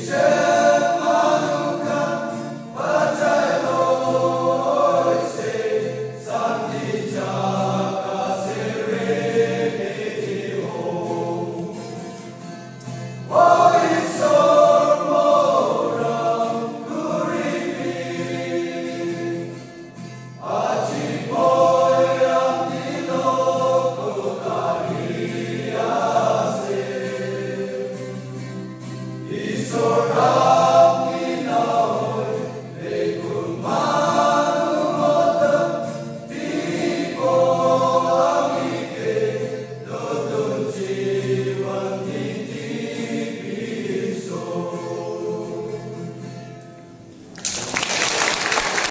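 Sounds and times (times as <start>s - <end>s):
male choir singing gospel: 0.0s - 46.4s
applause: 47.3s - 48.9s.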